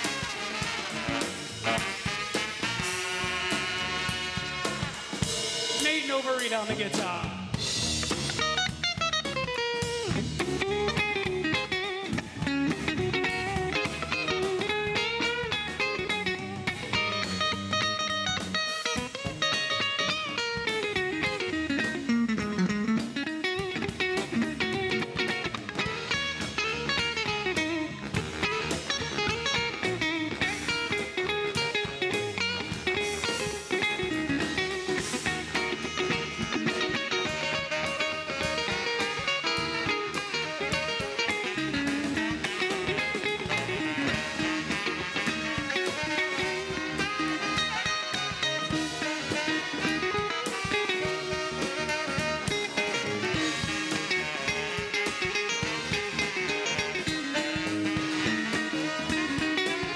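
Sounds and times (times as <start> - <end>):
electric guitar solo: 0.0 - 59.9
ska band playing: 0.0 - 59.9.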